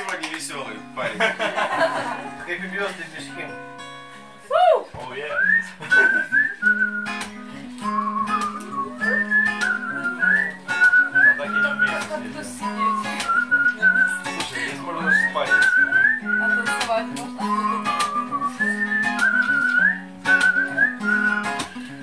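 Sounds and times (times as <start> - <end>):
strummed acoustic guitar: 0.0 - 22.0
man whistling melody: 4.5 - 22.0.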